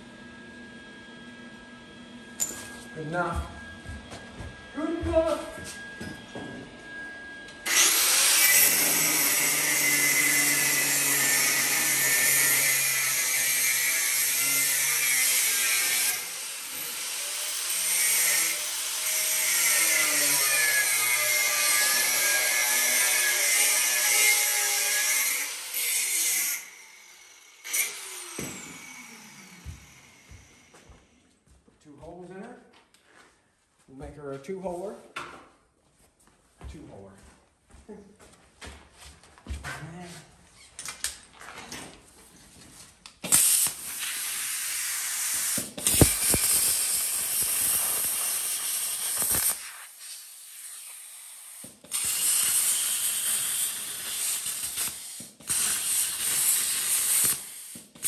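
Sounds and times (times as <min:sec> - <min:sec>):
angle grinder cutting steel: 0:07.6 - 0:30.7, 0:43.2 - 0:58.0.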